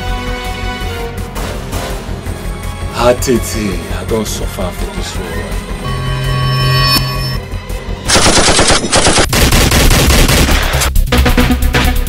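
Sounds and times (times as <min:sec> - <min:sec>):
automatic gunfire: 0:08.1 - 0:10.9.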